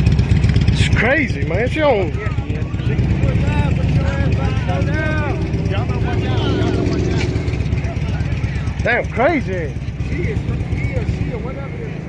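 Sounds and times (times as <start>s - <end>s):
steady low rumble: 1.4s - 10.2s
distant voices shouting: 2.0s - 11.9s.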